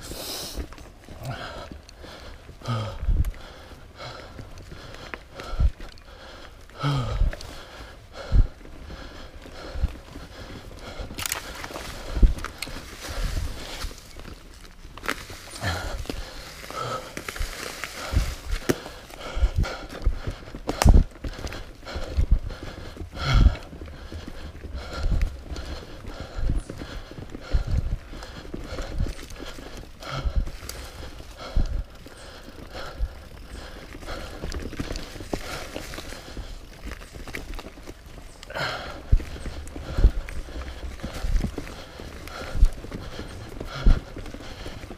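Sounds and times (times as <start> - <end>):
bike tyres rolling on dirt: 0.0 - 44.9
bike knocking and rattling: 0.6 - 44.9.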